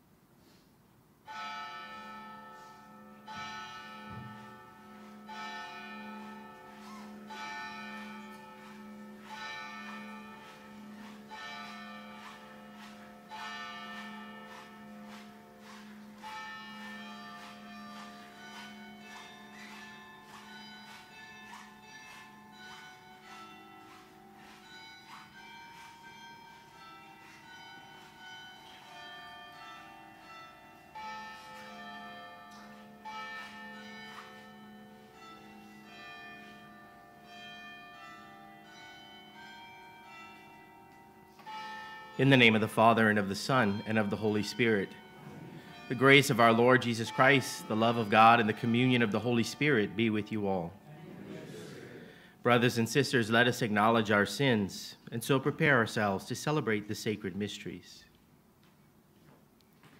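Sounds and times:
church bells ringing: 1.2s - 58.1s.

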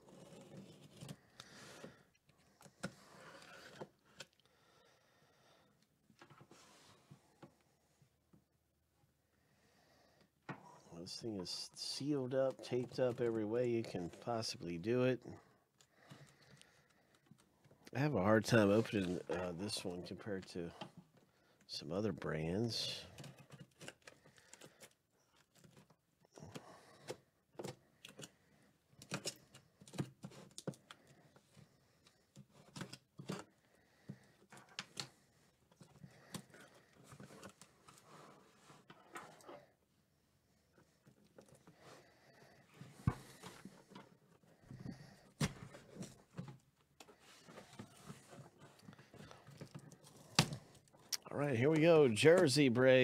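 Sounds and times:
faint clicks and scrapes: 0.0s - 4.5s, 22.9s - 53.0s.

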